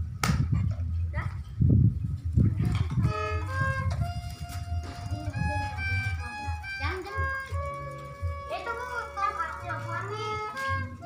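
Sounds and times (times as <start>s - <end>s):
violin held notes: 3.0s - 11.0s.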